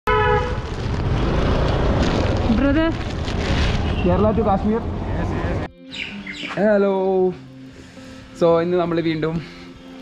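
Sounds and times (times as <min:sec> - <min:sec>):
vehicle horn honk: 0:00.1 - 0:00.6
traffic noise: 0:00.1 - 0:05.7.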